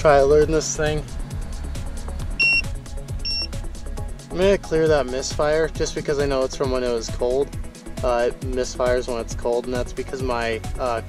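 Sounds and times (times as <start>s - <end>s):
background music with beat: 0.0s - 11.0s
short high electronic beep: 2.4s - 3.5s.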